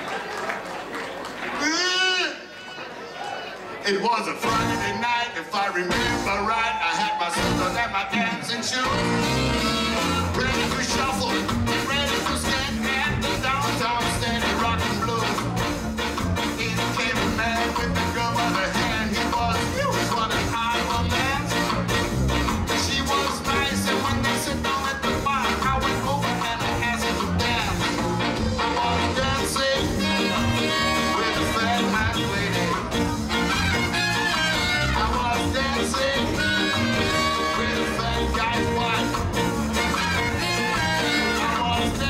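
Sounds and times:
ska band playing: 4.4 - 42.0
horn line: 5.9 - 42.0.

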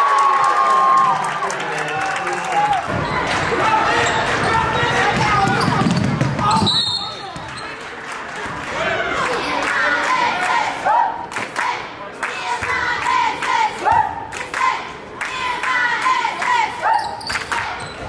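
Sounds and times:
basketball bouncing on hardwood floor: 5.1 - 6.7.

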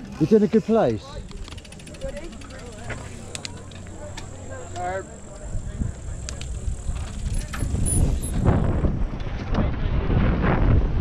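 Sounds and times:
bike clicks: 0.0 - 8.6
bike tyres rumbling on dirt: 0.0 - 11.0
wind on microphone: 5.4 - 11.0.

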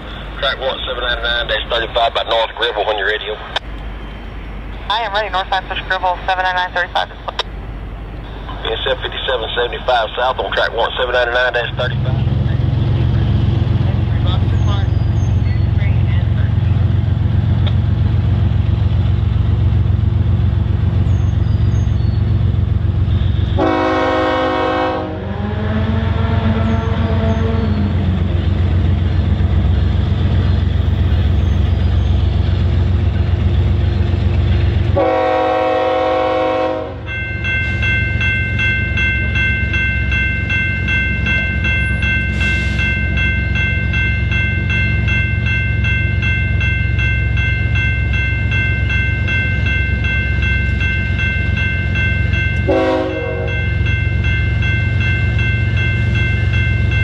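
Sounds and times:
crossing warning bell ringing: 0.0 - 57.0
train low rumble: 0.0 - 57.0
train horn blasts: 23.5 - 27.8, 34.9 - 37.1, 52.6 - 53.7.

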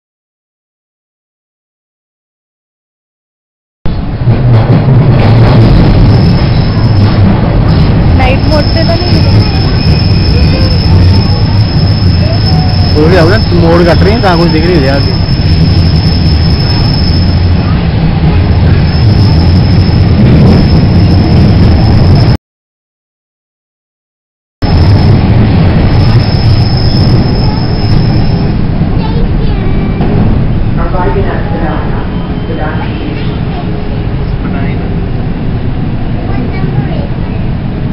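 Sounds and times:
subway train rumbling in tunnel: 3.9 - 22.4, 24.6 - 37.9
voices: 8.2 - 15.3, 26.0 - 35.0, 36.1 - 37.6.

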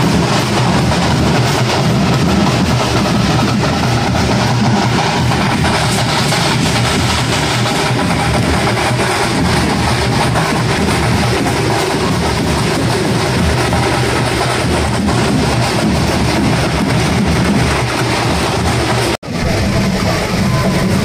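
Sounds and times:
loud music with heavy drum beat: 0.0 - 21.0.

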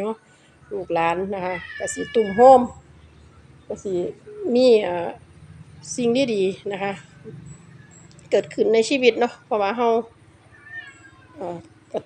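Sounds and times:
cat meowing softly: 1.6 - 2.8, 10.5 - 11.4.

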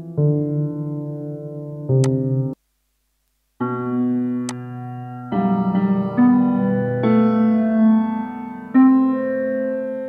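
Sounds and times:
piano playing sustained chords: 0.0 - 2.6, 3.6 - 10.0.

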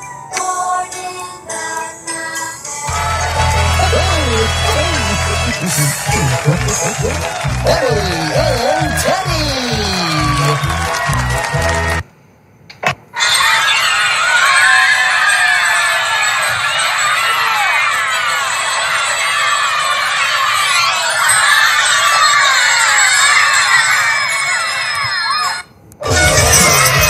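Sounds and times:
children screaming and shouting: 2.9 - 12.0, 13.1 - 27.0.

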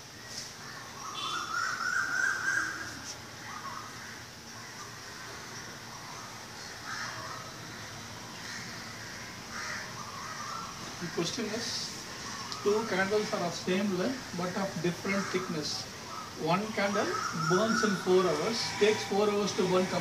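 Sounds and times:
birds calling: 0.0 - 20.0
steady background noise: 0.0 - 20.0.

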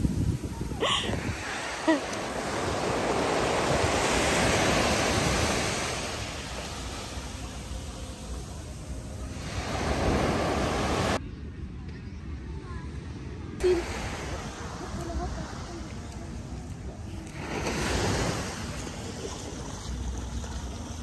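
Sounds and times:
wind buffeting microphone: 0.0 - 5.7
waves breaking on sandy beach: 0.0 - 11.2, 13.6 - 16.1, 17.2 - 21.0.

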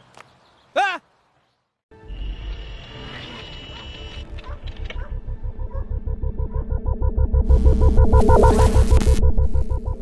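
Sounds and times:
low rumble: 5.2 - 10.0
high electronic whine: 5.3 - 10.0.

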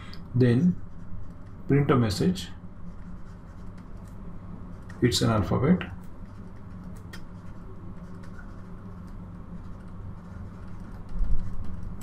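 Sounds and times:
low electrical hum: 0.0 - 12.0
stylus scratching on a tablet: 0.4 - 12.0.

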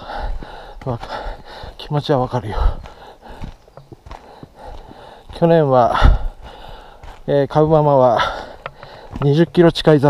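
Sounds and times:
footsteps on a dirt trail: 0.0 - 10.0.

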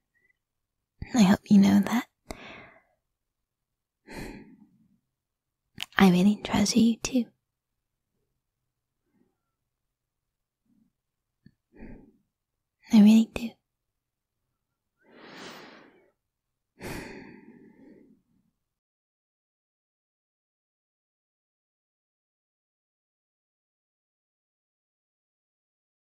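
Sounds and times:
breathy exhale: 15.1 - 16.1.

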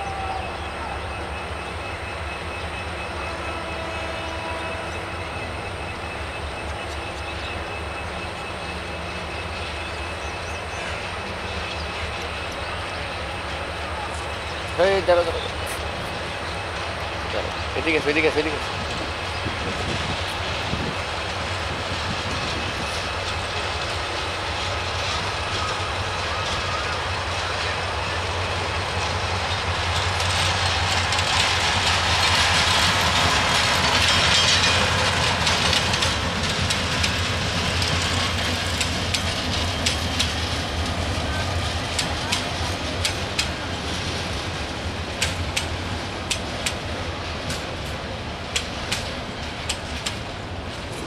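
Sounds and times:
diesel locomotive passing: 0.0 - 51.0
wheels clicking over rail joints: 11.5 - 51.0.

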